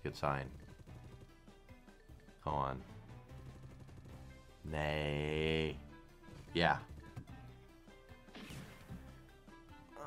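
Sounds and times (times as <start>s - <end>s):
quiet game music: 0.0s - 10.0s.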